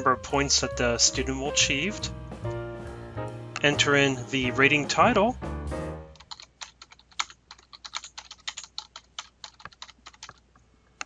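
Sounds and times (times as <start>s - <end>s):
typing on keyboard: 6.2s - 10.4s.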